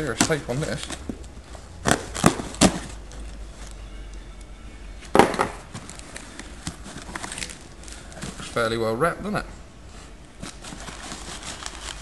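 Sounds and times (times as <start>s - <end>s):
packing tape ripping: 1.8s - 3.1s, 5.8s - 8.2s.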